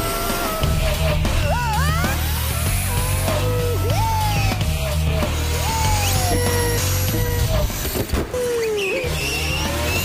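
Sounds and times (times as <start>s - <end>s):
background music: 0.0s - 10.0s
rc car motor whine: 0.0s - 10.0s
tyre squeal: 5.6s - 10.0s.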